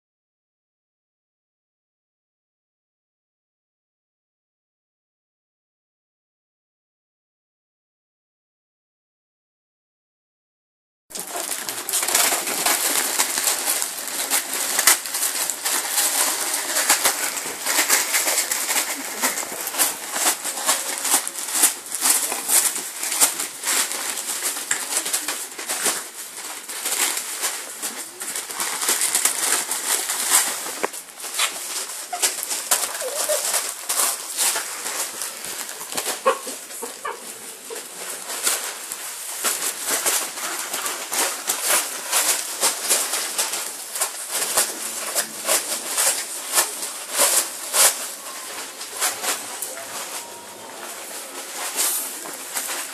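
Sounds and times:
wrapping paper crinkling and tearing: 11.1s - 52.9s.

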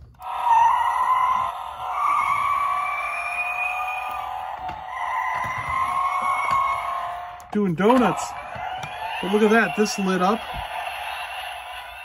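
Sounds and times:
toy speaker tyre squeal: 0.2s - 7.0s, 7.9s - 12.0s.

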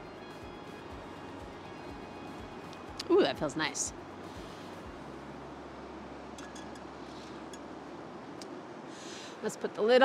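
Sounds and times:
stove burner flame hissing: 4.1s - 5.2s.

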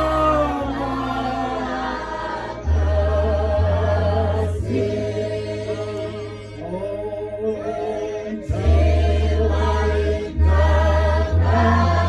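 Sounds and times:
sustained low bass notes: 0.0s - 12.0s
voices singing a hymn: 0.0s - 12.0s.

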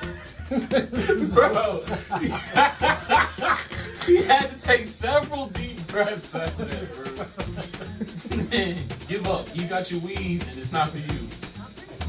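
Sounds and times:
young men laughing: 0.0s - 4.8s, 6.0s - 9.2s.

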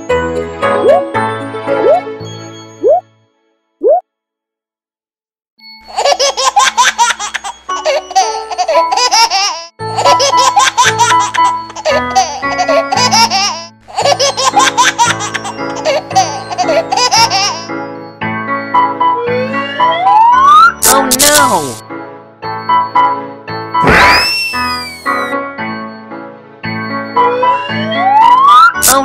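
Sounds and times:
bouncy children's music: 0.0s - 3.0s, 5.6s - 29.0s
cartoon rising glide: 1.8s - 2.1s, 2.8s - 3.0s, 19.2s - 20.8s, 23.8s - 25.3s
baby laughing and giggling: 5.9s - 17.7s.

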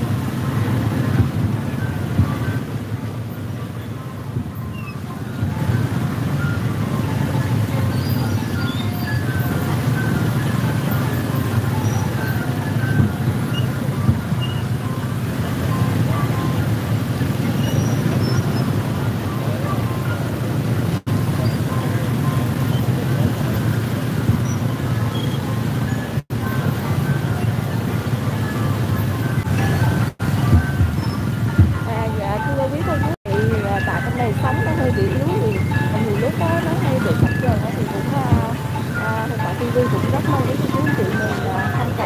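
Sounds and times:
motorbike engines running: 0.0s - 42.0s.

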